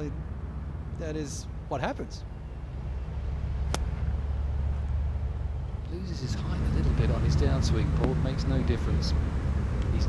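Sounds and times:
low outdoor rumble: 0.0s - 10.0s
golf club striking ball: 3.6s - 4.1s.

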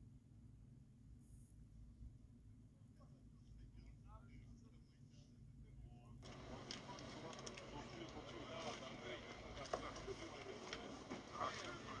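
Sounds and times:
handling noises and clicks: 6.2s - 12.0s.

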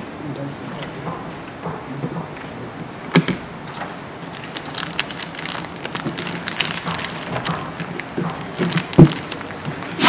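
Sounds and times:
paper rustling: 3.7s - 10.0s.

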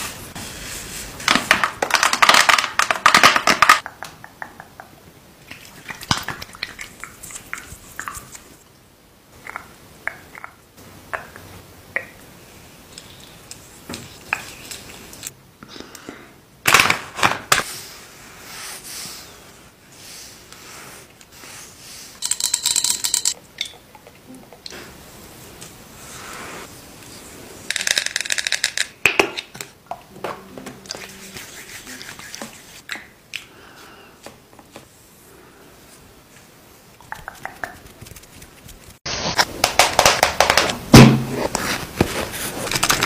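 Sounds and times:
oiled hands rubbing skin: 30.9s - 32.9s, 36.4s - 39.0s.

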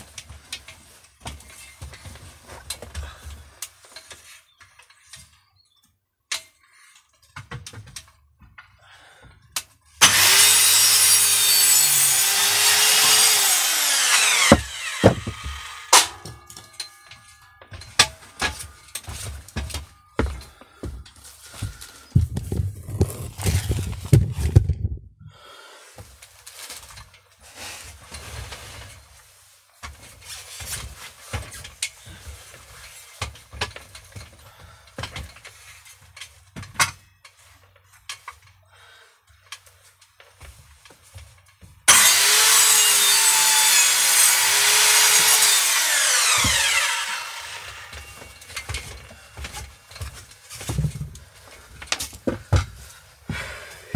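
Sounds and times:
knocks and rattles of handling: 0.0s - 10.0s, 13.0s - 25.2s, 26.0s - 38.6s, 39.3s - 41.9s, 46.2s - 53.6s
circular saw cutting wood: 10.0s - 17.5s, 41.9s - 49.9s.

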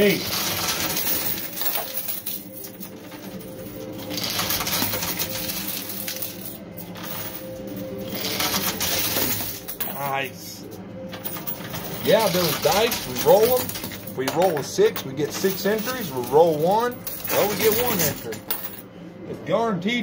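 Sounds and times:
coins clattering in pusher machine: 0.0s - 10.2s, 11.0s - 18.8s.

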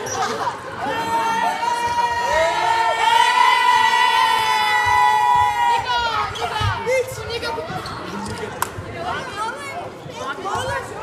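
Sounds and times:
boys shouting and chattering: 0.0s - 11.0s.

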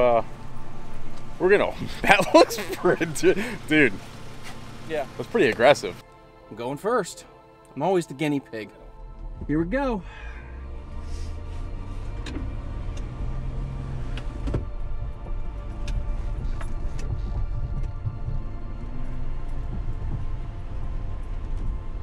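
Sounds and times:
background music: 0.0s - 22.0s
engine rumbling under load: 0.0s - 22.0s.

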